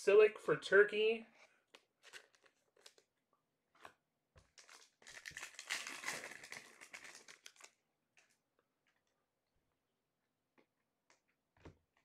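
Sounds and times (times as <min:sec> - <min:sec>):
wrapper crinkling and tearing: 0:02.0 - 0:03.1, 0:04.4 - 0:07.8.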